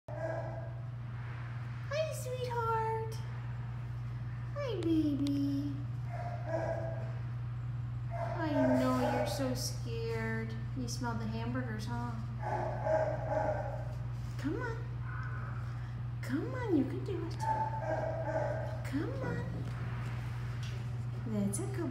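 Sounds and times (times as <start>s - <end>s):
dog whining: 0.1s - 0.8s, 6.1s - 7.2s, 8.1s - 9.5s, 15.0s - 15.9s
steady low hum: 0.1s - 21.9s.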